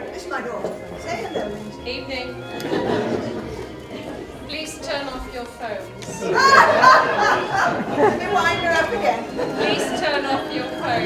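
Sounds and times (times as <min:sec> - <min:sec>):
audience chatter: 0:00.0 - 0:11.0.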